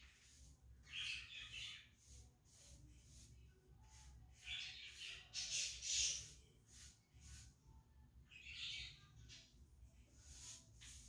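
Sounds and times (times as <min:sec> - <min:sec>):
paintbrush swish on wood: 0:00.0 - 0:07.7, 0:10.0 - 0:11.0.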